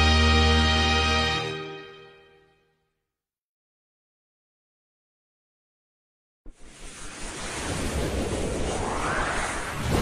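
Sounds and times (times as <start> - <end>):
whoosh with rising sweep: 6.6 - 10.0.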